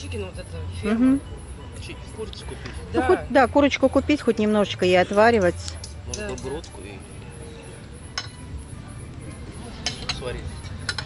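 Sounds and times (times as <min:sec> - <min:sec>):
cutlery clinking on plates: 0:05.0 - 0:06.8, 0:08.1 - 0:08.5, 0:09.6 - 0:11.0.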